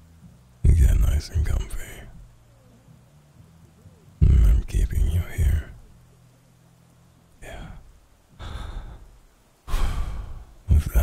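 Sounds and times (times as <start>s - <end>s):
man speaking: 0.6s - 2.2s, 4.2s - 5.8s, 7.4s - 7.9s, 10.6s - 11.0s
man sighing: 7.4s - 9.1s, 9.7s - 10.5s.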